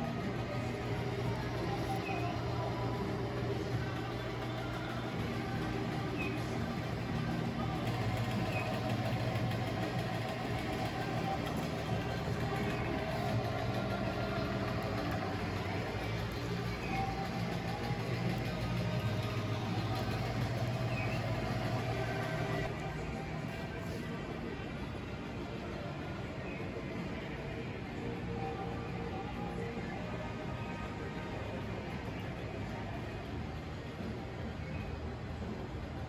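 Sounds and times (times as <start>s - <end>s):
faint background music: 0.0s - 36.0s
steady low hum: 0.0s - 36.0s.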